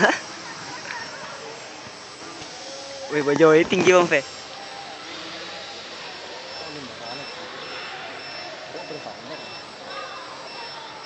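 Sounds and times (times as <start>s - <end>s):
indistinct voices: 0.0s - 11.0s
high-pitched electronic beeps: 6.4s - 11.0s.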